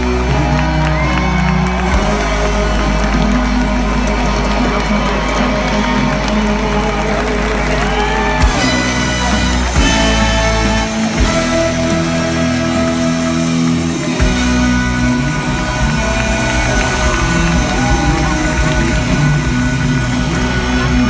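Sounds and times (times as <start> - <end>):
audience cheering and whooping: 0.0 - 21.0
live rock band playing: 0.0 - 21.0.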